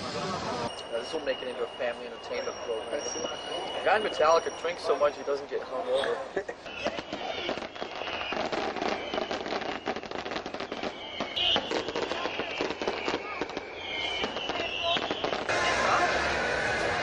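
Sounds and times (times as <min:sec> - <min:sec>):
fireworks crackling and popping: 0:00.0 - 0:06.0, 0:06.6 - 0:17.0.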